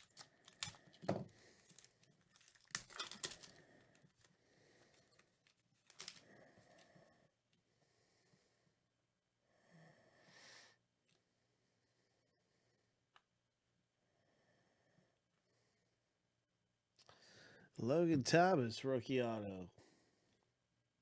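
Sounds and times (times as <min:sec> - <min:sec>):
foil wrapper crinkling and tearing: 0:00.0 - 0:06.9.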